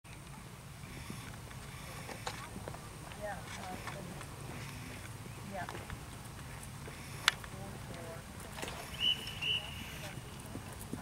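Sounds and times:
horse hooves on turf: 0.1s - 11.0s.

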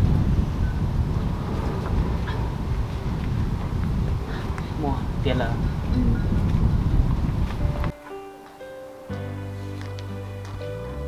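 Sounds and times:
wind buffeting microphone: 0.0s - 7.9s.

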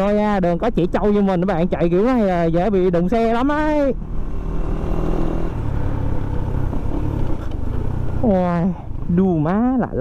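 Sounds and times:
motorcycle engine running: 0.0s - 10.0s
road and wind noise: 0.0s - 10.0s.

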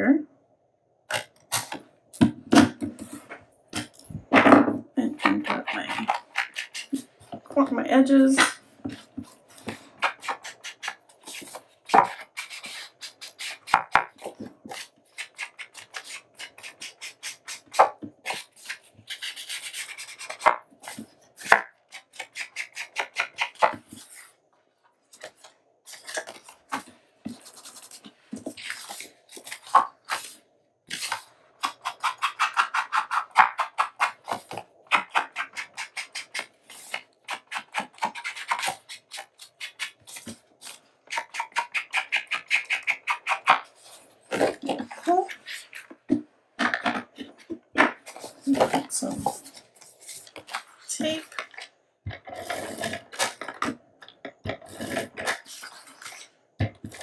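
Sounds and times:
ink tool rubbing on paper: 14.7s - 21.0s, 33.8s - 45.8s
page turning: 25.2s - 31.3s, 47.8s - 51.7s.

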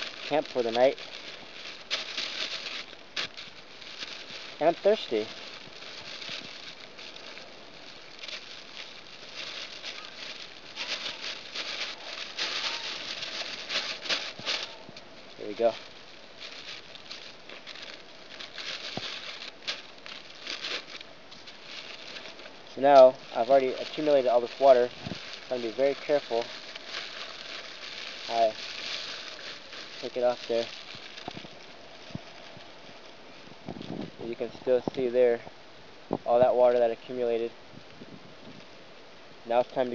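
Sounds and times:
plastic bag crinkling and rustling: 0.0s - 35.4s
steady outdoor hiss: 0.0s - 39.9s.

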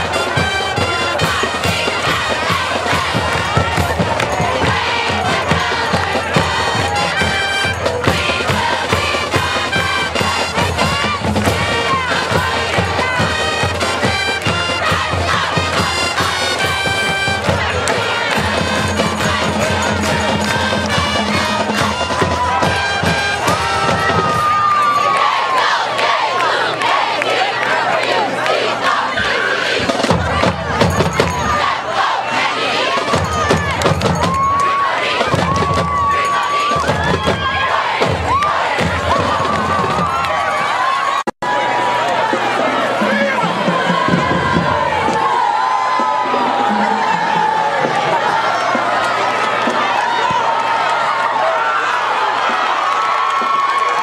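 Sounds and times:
marching band brass and drums: 0.0s - 51.2s
crowd cheering and shouting: 0.0s - 54.0s.

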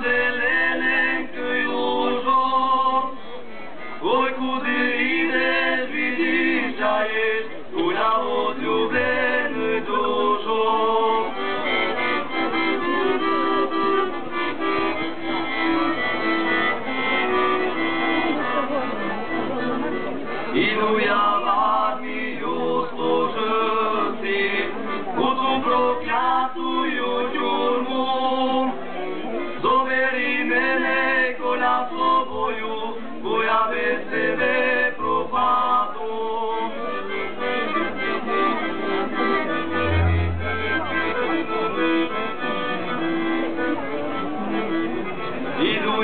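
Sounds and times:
live concert music over loudspeakers: 39.7s - 42.3s.

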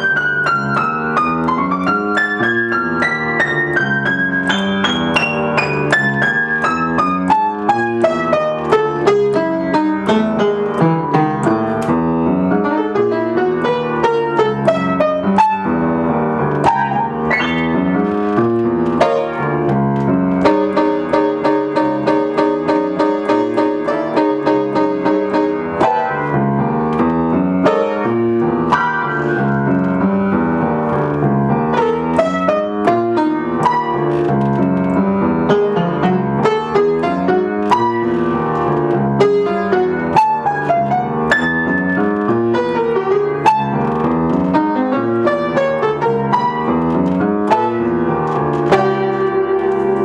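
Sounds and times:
solo jazz piano: 0.0s - 50.0s.

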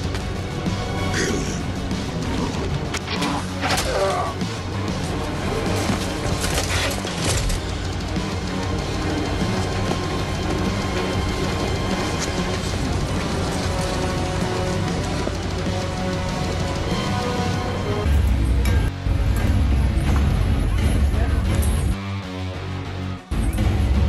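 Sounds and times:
film soundtrack music: 0.0s - 24.0s.

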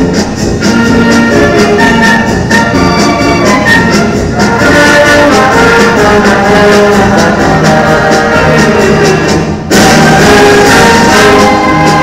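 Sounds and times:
percussion beat: 0.0s - 12.0s
trumpets and trombones: 0.0s - 12.0s.

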